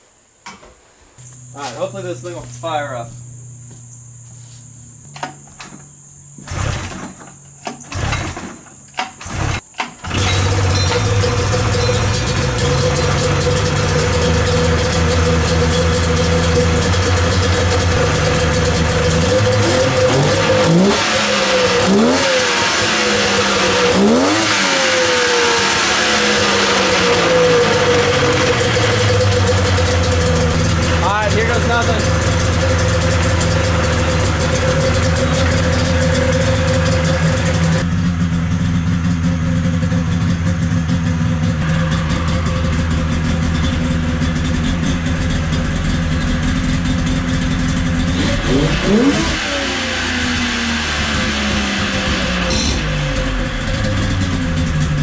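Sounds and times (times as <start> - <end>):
snowmobile engine idling and revving: 9.2 - 55.0.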